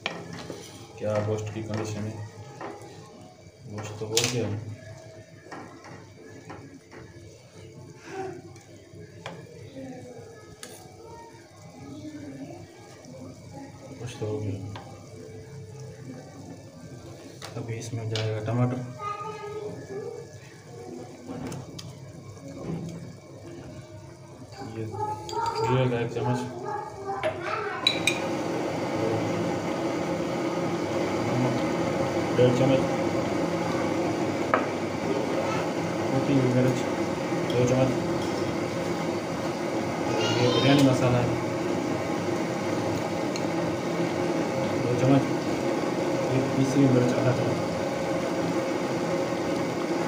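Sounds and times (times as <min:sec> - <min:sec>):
broth simmering in a pan: 0:00.0 - 0:50.0.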